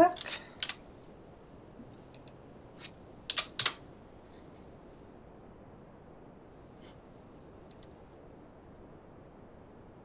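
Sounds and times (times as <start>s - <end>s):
computer keyboard keystrokes: 3.3s - 3.8s.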